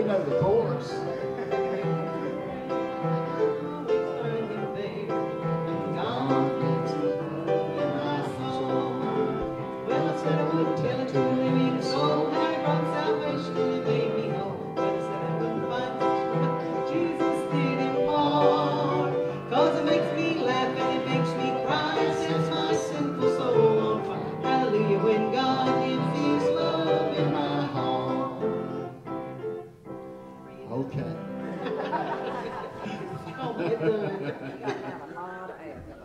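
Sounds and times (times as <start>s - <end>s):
hymn singing: 0.0s - 29.5s, 30.2s - 36.0s
piano accompaniment: 0.0s - 34.9s.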